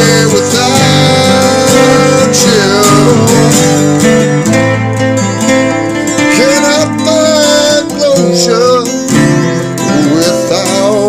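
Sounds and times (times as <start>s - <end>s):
guitar with bending notes: 0.0s - 11.0s.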